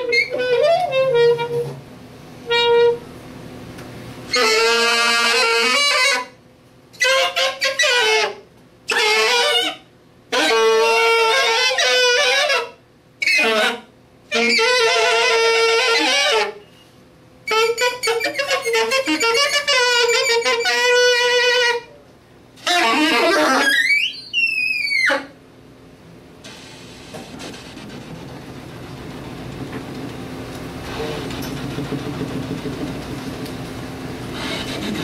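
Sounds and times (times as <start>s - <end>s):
saxophone improvising: 0.0s - 1.8s, 2.4s - 3.0s, 4.3s - 6.4s, 7.0s - 16.8s, 17.5s - 22.0s, 22.6s - 25.4s.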